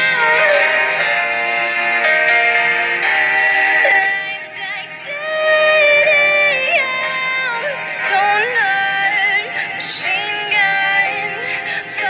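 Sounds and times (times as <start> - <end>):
woman singing: 0.0 - 1.1, 3.6 - 12.0
held synth chord: 0.0 - 12.0.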